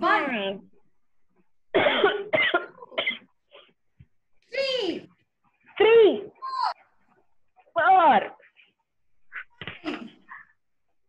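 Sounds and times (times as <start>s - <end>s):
person coughing: 1.7s - 3.3s.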